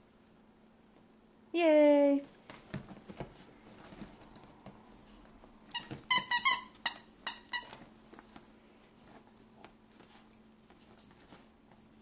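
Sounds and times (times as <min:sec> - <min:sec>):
dog toy squeaking: 0:05.7 - 0:07.8.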